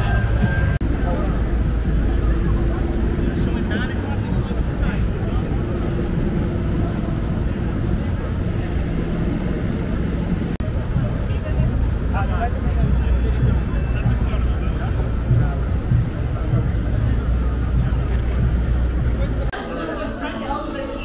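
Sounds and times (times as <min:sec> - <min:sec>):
pedestrians' voices: 0:00.0 - 0:21.0
traffic rumble: 0:00.0 - 0:21.0.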